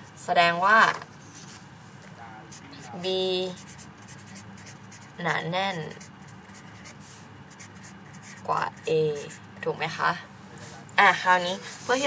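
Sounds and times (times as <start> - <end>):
marker scratching on paper: 2.5 - 9.7.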